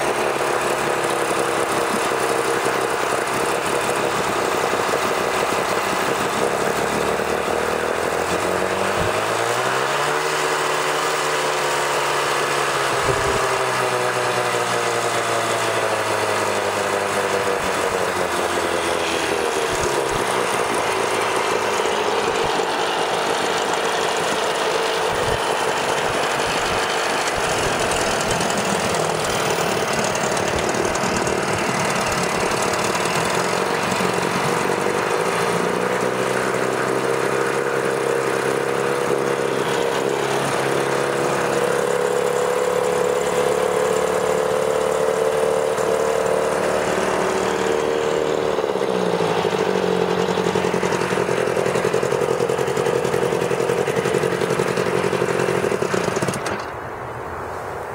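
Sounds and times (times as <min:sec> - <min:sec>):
outboard motor running: 0:00.0 - 0:56.9.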